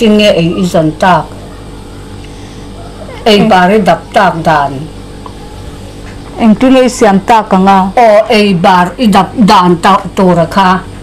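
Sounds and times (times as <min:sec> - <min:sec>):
woman speaking loudly: 0:00.0 - 0:01.3, 0:03.2 - 0:04.9, 0:06.4 - 0:10.9
faint low hum: 0:00.0 - 0:11.0.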